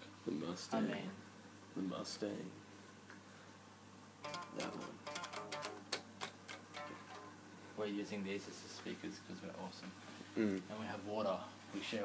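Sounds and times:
guitar picked notes: 4.2s - 6.0s, 6.7s - 7.4s.

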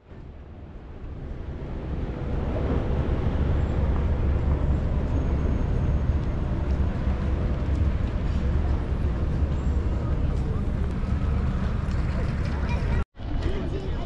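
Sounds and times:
distant traffic rumble: 0.0s - 14.0s.

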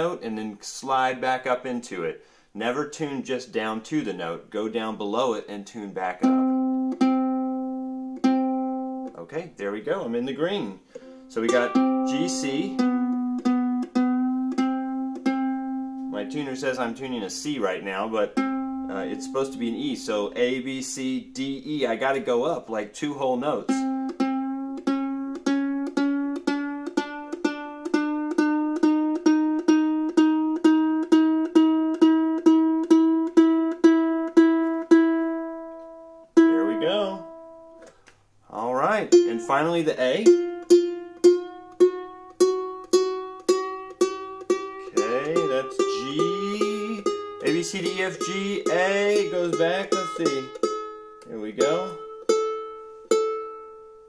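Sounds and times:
ukulele string plucked: 6.2s - 9.2s, 10.6s - 21.9s, 23.5s - 38.1s, 39.0s - 54.0s.

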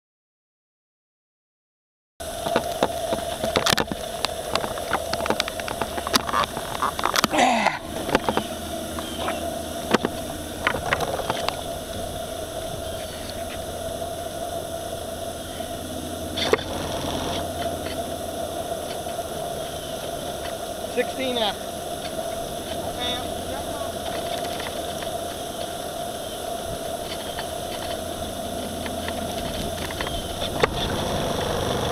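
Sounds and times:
steam boat mechanical hum: 2.2s - 31.9s
water wash: 2.2s - 31.9s
sharp clicks and knocks: 2.4s - 7.3s.

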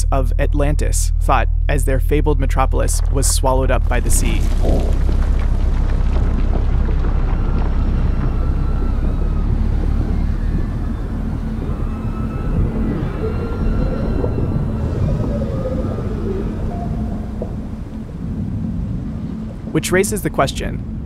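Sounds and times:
deep continuous rumble: 0.0s - 21.0s
long held gliding tones: 6.3s - 21.0s.

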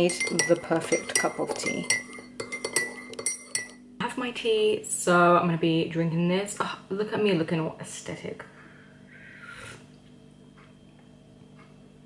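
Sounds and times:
teaspoon clinking in ceramic mug: 0.0s - 3.8s.

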